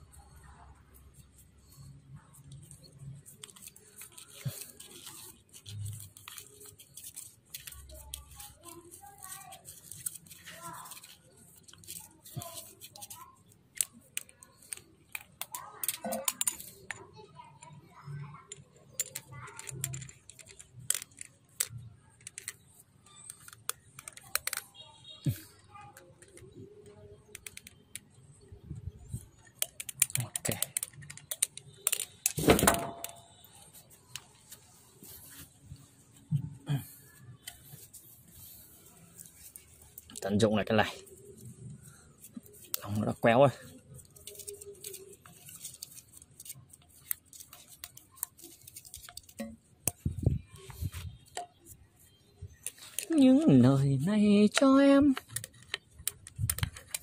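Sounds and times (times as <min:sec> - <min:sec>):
small clicks and rustles: 0:00.1 - 0:40.4, 0:41.0 - 0:53.5, 0:54.5 - 0:57.0.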